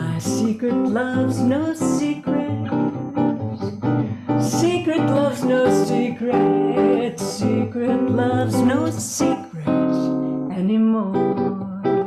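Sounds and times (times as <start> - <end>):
nylon-string guitar: 0.0 - 12.0
woman singing jazz: 0.0 - 12.0.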